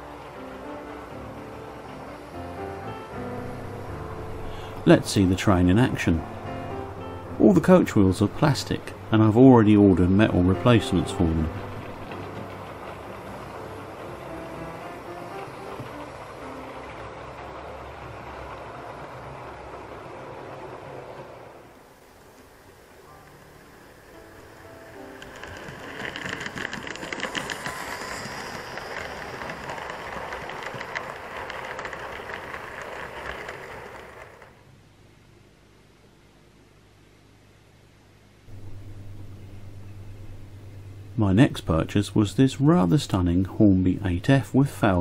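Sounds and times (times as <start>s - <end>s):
model train running on track: 0.0s - 34.6s, 41.2s - 45.0s
wheels clicking over rail joints: 0.0s - 34.6s.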